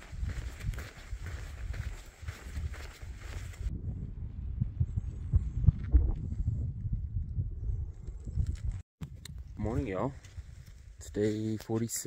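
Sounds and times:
wind buffeting microphone: 0.0 - 11.2.

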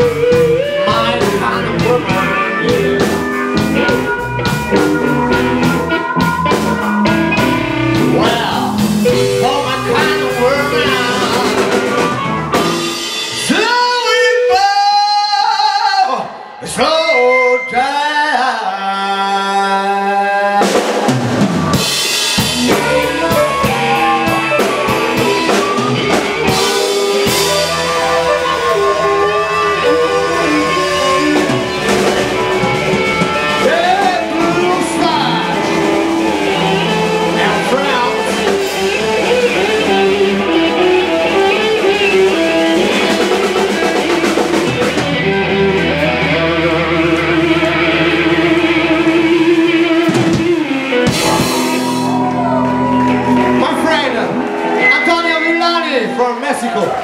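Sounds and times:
person singing: 0.0 - 12.6, 13.3 - 20.9, 21.8 - 53.8
resonator guitar: 0.0 - 13.4, 21.7 - 55.8
drum kit: 0.0 - 15.3, 20.4 - 57.0
bass guitar: 0.0 - 57.0
harmonica: 21.8 - 52.2.

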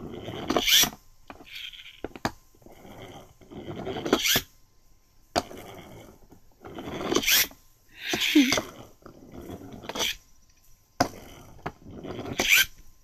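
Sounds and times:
pullback toy car whirring: 0.2 - 2.0, 2.8 - 4.5, 5.4 - 8.8, 9.4 - 10.2, 11.0 - 12.8.

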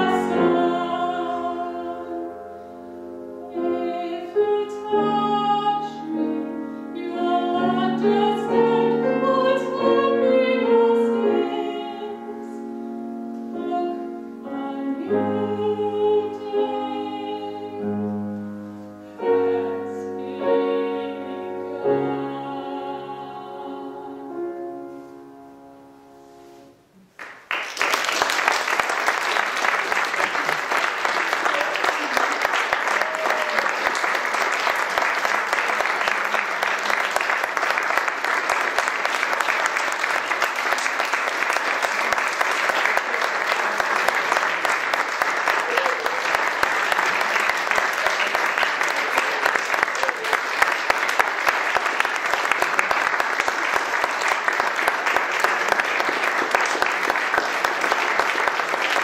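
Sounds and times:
audience applause: 27.2 - 59.0.

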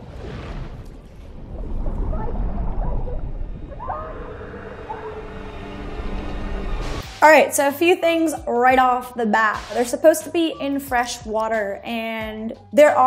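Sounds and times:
deep rumble: 0.0 - 7.1
wavering pitched calls: 2.2 - 6.6.

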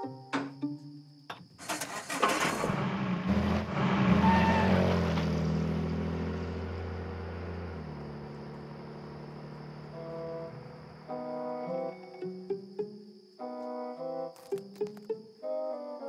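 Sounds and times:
car engine cranking: 1.6 - 9.9
car engine running: 1.6 - 11.2.

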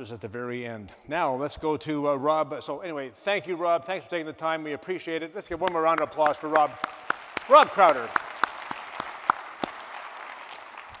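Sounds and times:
audience applauding: 5.9 - 11.0.

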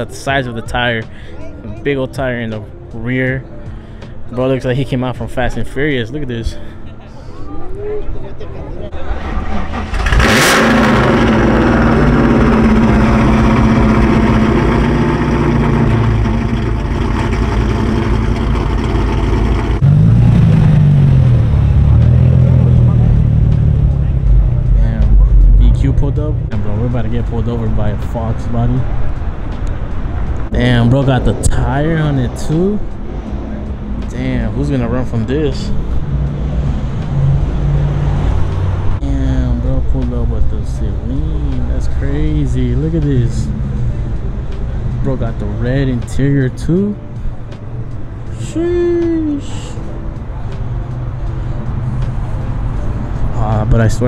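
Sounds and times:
car engine revving: 8.9 - 48.4
car engine starting and idling: 8.9 - 54.0.

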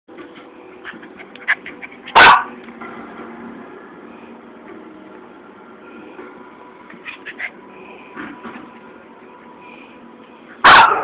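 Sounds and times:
dog barking loudly: 1.5 - 2.6, 10.6 - 11.0.

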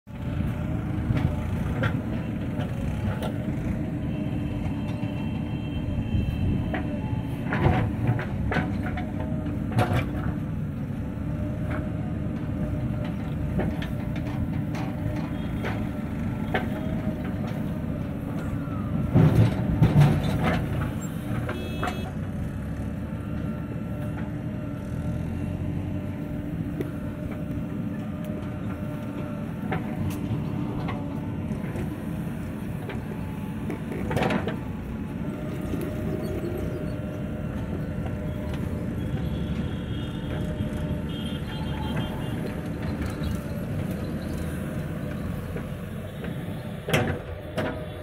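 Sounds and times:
diesel engine running under load: 0.0 - 48.0.

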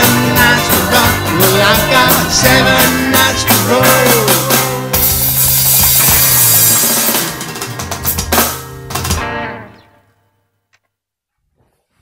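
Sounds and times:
drum hits: 0.0 - 9.4
rock band playing: 0.0 - 10.0.

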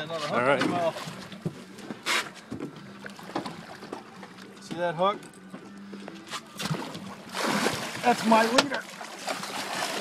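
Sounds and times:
water splashing: 6.5 - 10.0.

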